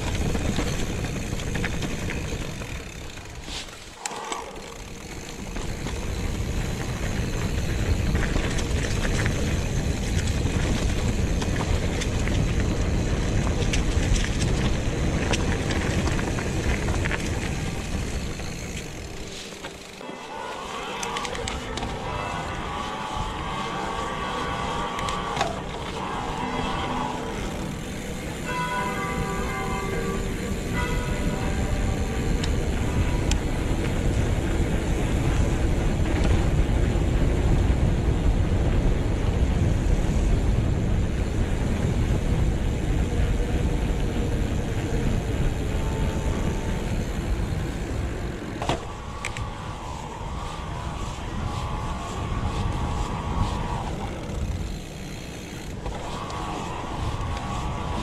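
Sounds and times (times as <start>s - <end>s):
high whine: 0.0s - 36.0s, 41.1s - 58.0s
wind rushing over microphone: 20.6s - 58.0s.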